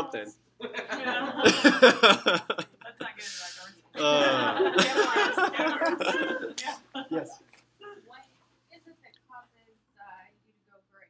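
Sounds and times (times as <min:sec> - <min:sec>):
voices in lecture room: 0:00.0 - 0:10.3
laughter: 0:00.6 - 0:03.0, 0:04.0 - 0:07.2.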